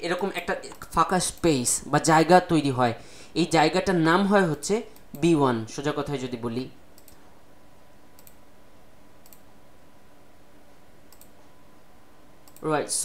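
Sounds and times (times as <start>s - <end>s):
low room hiss: 0.0s - 13.0s
computer mouse clicks: 7.0s - 7.2s, 8.2s - 8.4s, 9.2s - 9.5s, 11.1s - 11.5s, 12.4s - 12.7s.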